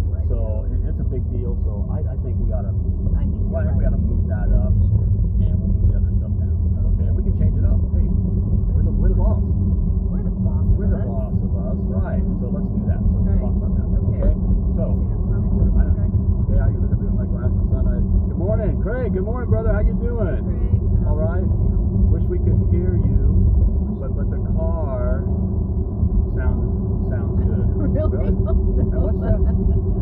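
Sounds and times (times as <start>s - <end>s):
faint voices: 0.0s - 9.5s, 10.1s - 25.2s, 26.3s - 30.0s
car engine and road rumble: 0.0s - 30.0s.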